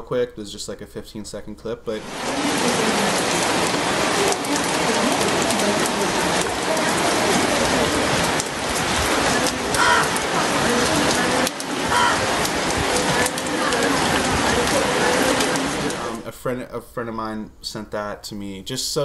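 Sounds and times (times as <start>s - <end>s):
rain falling: 1.9s - 16.3s.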